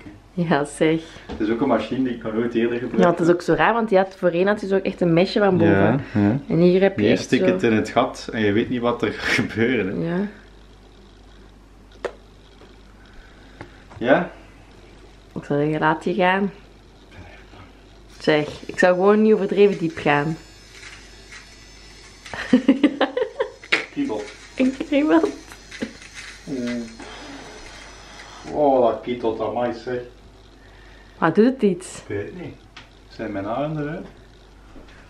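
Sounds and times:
nose hair trimmer buzzing: 5.4 - 6.4, 7.0 - 9.0, 18.0 - 30.1
man humming: 5.6 - 6.4.

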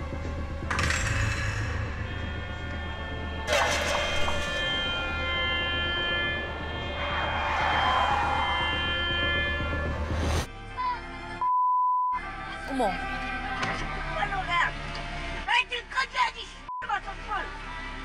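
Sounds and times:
background music with whooshes: 0.0 - 11.4.

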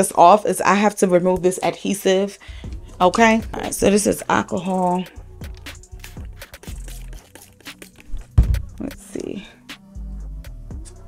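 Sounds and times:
quiet background music with beat: 0.0 - 11.0.

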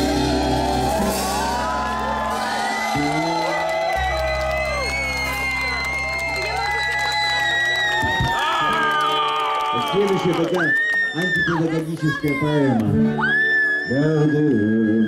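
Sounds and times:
live band holding a chord: 0.0 - 6.2
crowd cheering and whooping: 0.0 - 14.6.

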